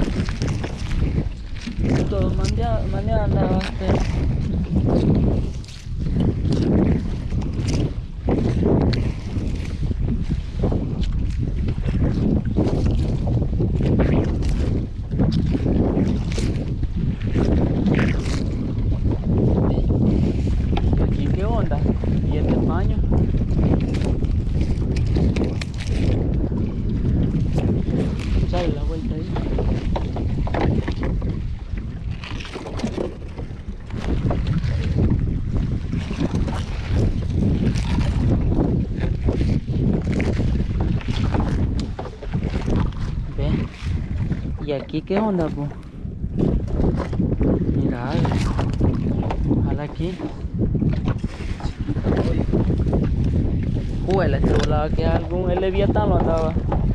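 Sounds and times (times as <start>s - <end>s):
wind rumbling on microphone: 0.0s - 56.9s.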